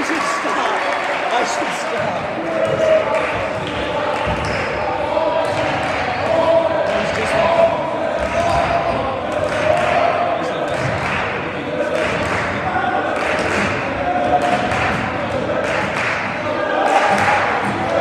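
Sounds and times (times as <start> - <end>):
indistinct voices: 0.0 - 18.0.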